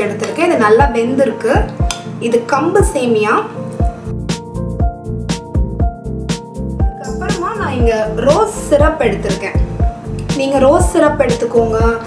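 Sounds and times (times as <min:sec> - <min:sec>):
deep drum beat: 0:04.1 - 0:10.0.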